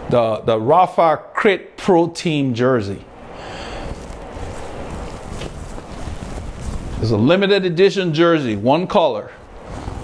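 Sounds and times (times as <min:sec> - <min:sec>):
fan wind on microphone: 0:00.0 - 0:10.0.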